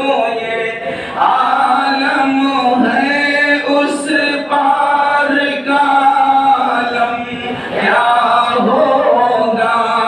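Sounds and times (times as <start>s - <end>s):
man chanting devotional melody: 0.0s - 10.0s.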